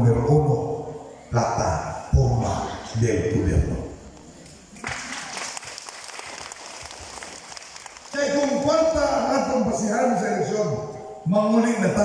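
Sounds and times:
audience applauding: 0:04.8 - 0:09.3.

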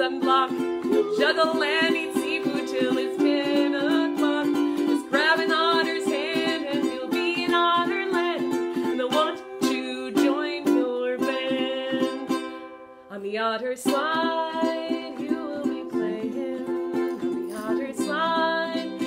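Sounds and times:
ukulele strumming chords: 0:00.0 - 0:19.0
woman singing children's song: 0:00.0 - 0:19.0.

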